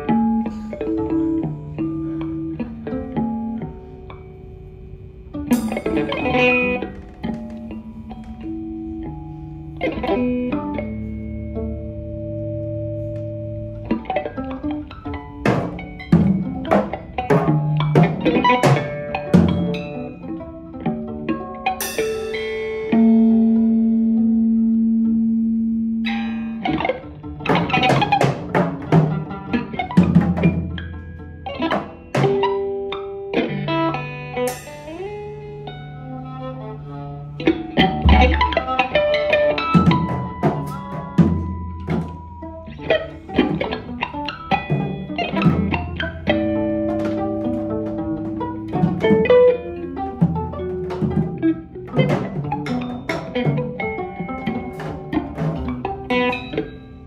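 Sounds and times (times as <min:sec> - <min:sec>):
electric guitar: 0:00.0 - 0:57.0
drum kit: 0:05.4 - 0:11.6, 0:13.0 - 0:24.3, 0:26.0 - 0:33.6, 0:34.3 - 0:57.0
drum kit hits: 0:05.5 - 0:07.7, 0:38.0 - 0:42.5
viola: 0:35.2 - 0:57.0.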